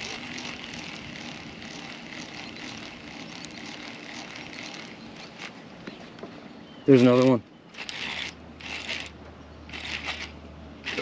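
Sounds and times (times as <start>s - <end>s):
fishing reel cranking: 0.0s - 5.5s, 7.7s - 9.1s, 9.7s - 11.0s.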